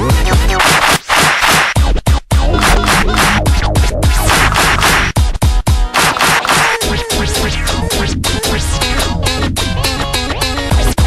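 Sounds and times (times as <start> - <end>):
vinyl record scratching: 0.4 - 7.6
backing beat: 1.4 - 6.6.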